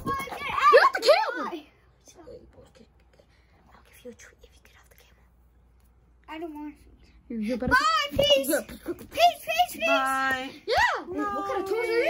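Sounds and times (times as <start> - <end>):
person whispering: 2.5 - 5.4.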